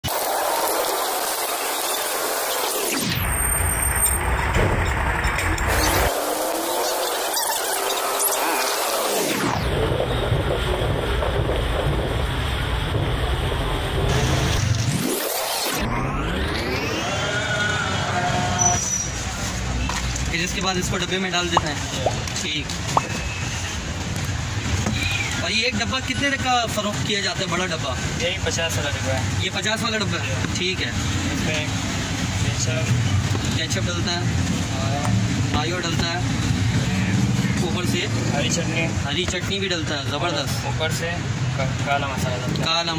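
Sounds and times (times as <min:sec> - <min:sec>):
low street rumble: 0:03.1 - 0:15.1, 0:15.7 - 0:42.9.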